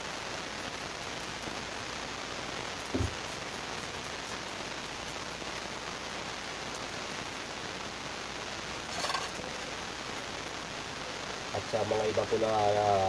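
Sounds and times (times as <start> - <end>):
steady rain-like hiss: 0.0 - 13.0.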